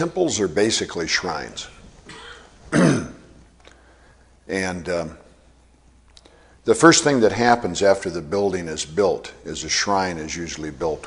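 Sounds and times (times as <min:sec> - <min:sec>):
man clearing his throat: 0:02.1 - 0:03.4.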